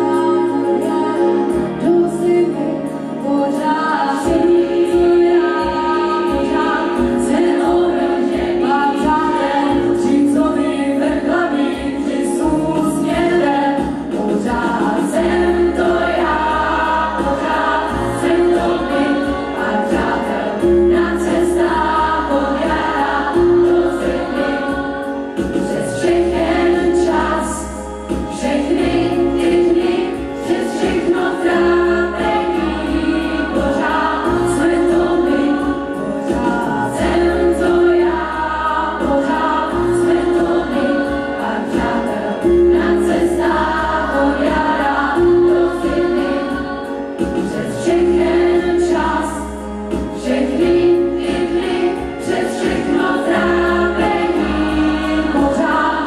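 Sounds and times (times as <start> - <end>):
instrumental accompaniment: 0.0 - 56.0
woman singing into microphone: 0.0 - 56.0
choir singing: 3.2 - 56.0.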